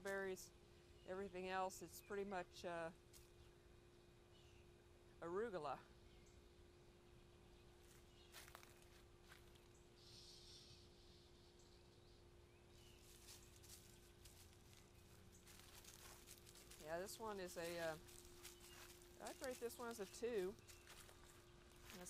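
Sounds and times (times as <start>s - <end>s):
steady low hum: 0.0s - 22.0s
dry leaves crackling underfoot: 7.8s - 9.8s, 12.7s - 22.0s.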